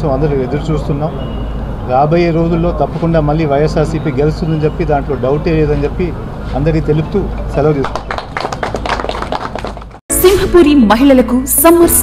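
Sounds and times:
people clapping: 0:07.7 - 0:10.0.

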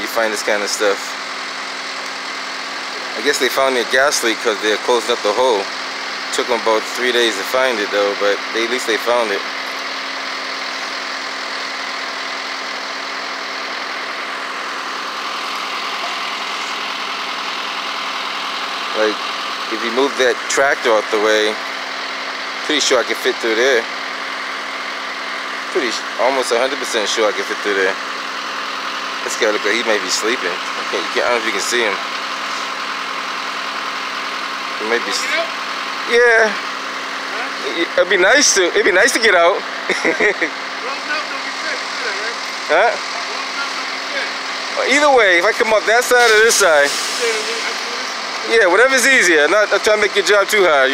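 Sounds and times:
heavy vehicle engine idling: 0:00.0 - 0:50.9.

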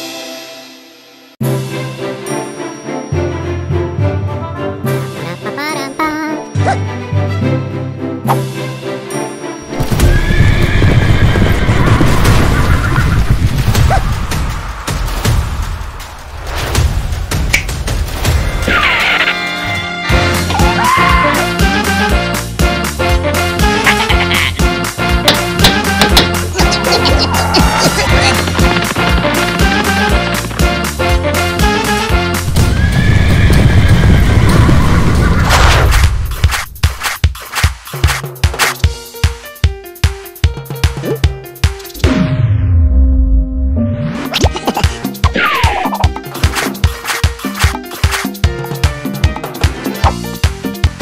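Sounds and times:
background music: 0:00.0 - 0:10.9, 0:13.8 - 0:33.1, 0:37.8 - 0:51.0
horses galloping: 0:26.0 - 0:30.8.

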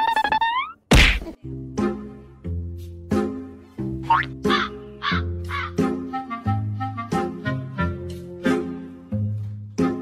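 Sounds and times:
background music: 0:00.5 - 0:10.0
loud whack: 0:00.9 - 0:01.4.

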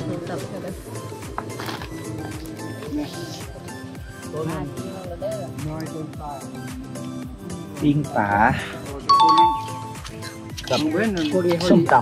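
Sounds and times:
two-note ding-dong chime: 0:09.1 - 0:10.0.

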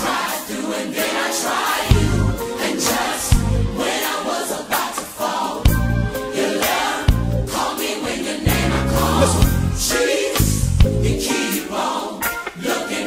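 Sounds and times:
group of voices singing: 0:00.0 - 0:13.0
deep bass notes: 0:01.9 - 0:02.4, 0:03.4 - 0:03.8, 0:05.7 - 0:06.1, 0:08.5 - 0:11.2.

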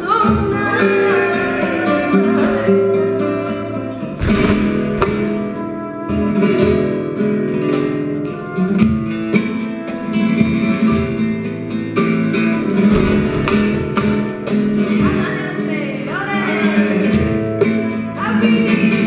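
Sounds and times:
flamenco acoustic guitar: 0:00.0 - 0:19.0
sharp percussive accents: 0:04.1 - 0:06.1.

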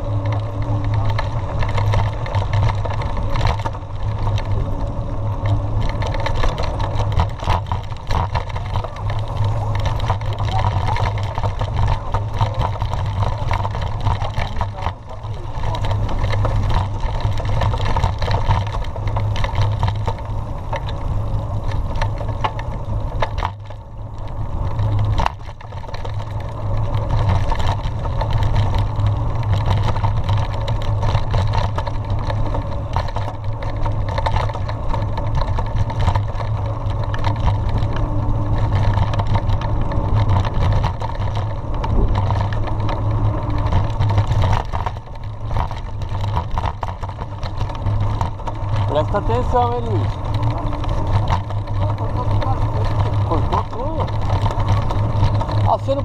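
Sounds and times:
bike rattles and clicks: 0:00.0 - 0:56.0
bike tyre rolling over dirt: 0:00.0 - 0:56.0
wind on microphone: 0:37.0 - 0:44.7.

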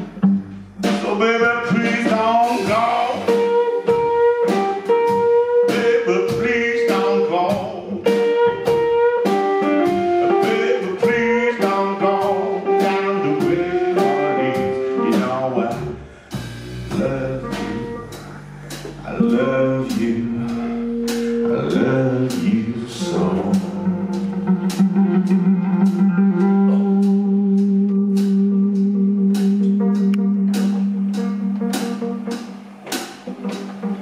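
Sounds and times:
electric guitar melody: 0:00.0 - 0:16.2, 0:16.8 - 0:34.0
drums: 0:00.0 - 0:34.0
upright bass: 0:00.0 - 0:34.0.

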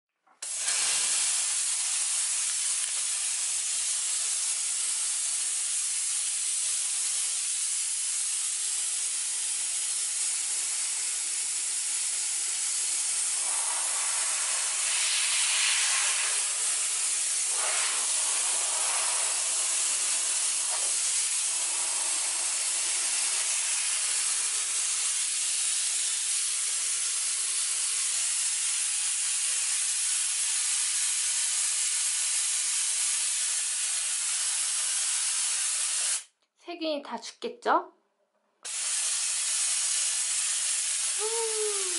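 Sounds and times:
steam jet hissing: 0:00.4 - 0:36.3, 0:38.6 - 0:41.9.

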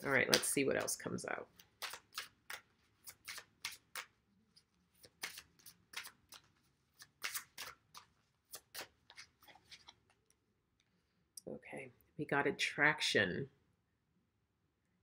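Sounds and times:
cards being shuffled: 0:00.0 - 0:10.3.

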